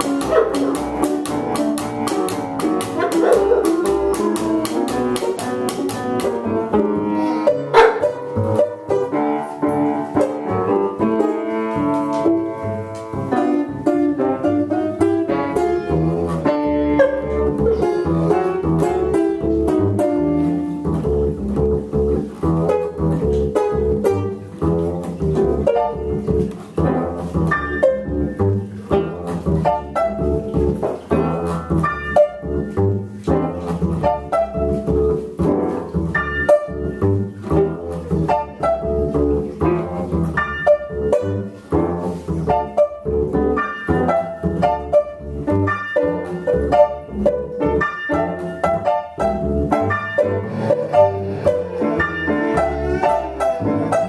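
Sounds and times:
banjo plucked notes: 0.0s - 54.0s
bass line: 12.5s - 54.0s.

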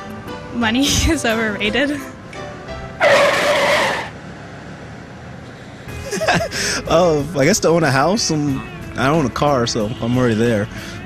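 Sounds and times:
screech like skidding tyres: 3.0s - 4.3s.

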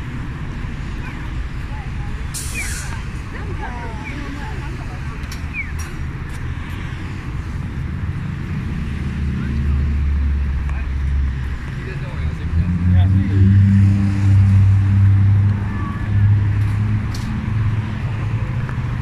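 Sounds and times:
city street noise: 0.0s - 19.0s
vehicle engines running: 0.0s - 19.0s.

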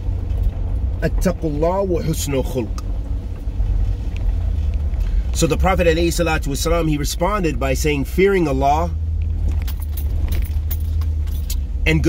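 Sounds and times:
truck engine and tyre rumble: 0.0s - 12.0s
cab clicking and rattling: 9.1s - 12.0s.

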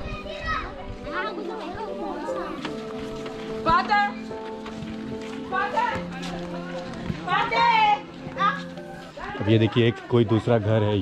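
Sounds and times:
background music: 0.0s - 11.0s
children calling and chattering: 0.0s - 11.0s.

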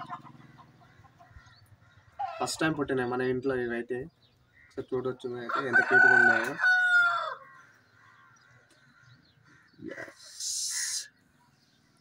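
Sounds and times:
chickens clucking faintly: 0.0s - 3.3s.

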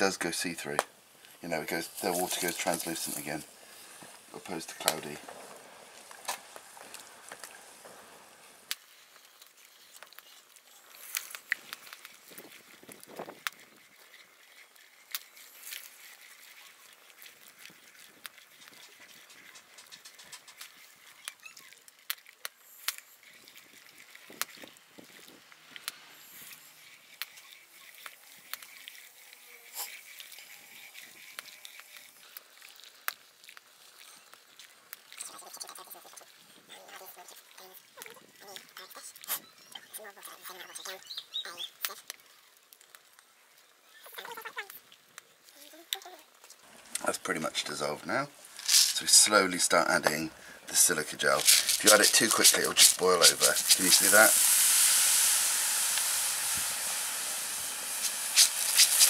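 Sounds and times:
faint hiss: 0.0s - 59.0s.

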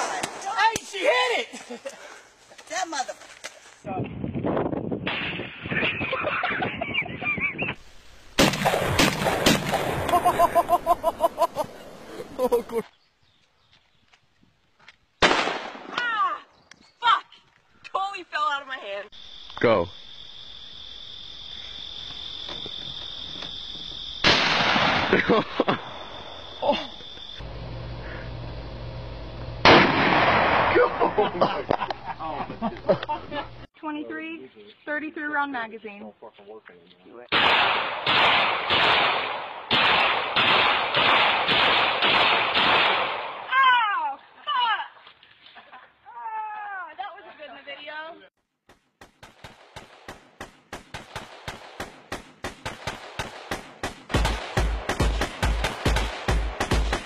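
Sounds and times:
woman laughing: 1.4s - 3.3s, 5.7s - 7.8s, 10.1s - 12.9s, 25.1s - 25.8s, 26.6s - 27.1s, 31.0s - 33.5s, 44.2s - 48.2s
loud gunfire: 8.4s - 10.4s, 15.2s - 15.9s, 24.2s - 25.3s, 29.6s - 31.1s, 37.3s - 43.5s, 49.0s - 57.0s
gunshots: 8.4s - 10.6s, 15.2s - 16.0s, 24.2s - 25.4s, 29.6s - 31.1s, 37.3s - 43.5s, 49.0s - 57.0s
low steady hum: 27.2s - 33.7s.

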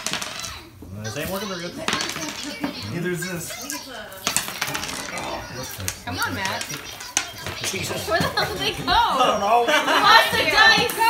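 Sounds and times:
dice clattering on wooden floor: 0.0s - 0.5s, 1.9s - 2.6s, 4.2s - 8.5s.

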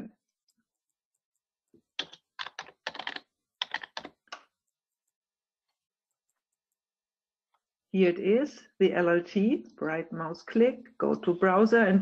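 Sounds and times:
computer keyboard typing: 0.7s - 5.2s.

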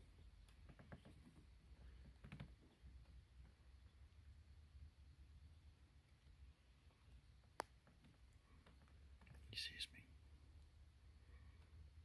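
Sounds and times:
breathy human whisper: 9.4s - 10.2s.

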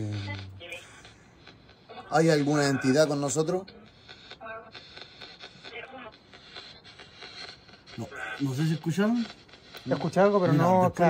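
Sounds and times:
choppy radio static: 0.0s - 11.0s.

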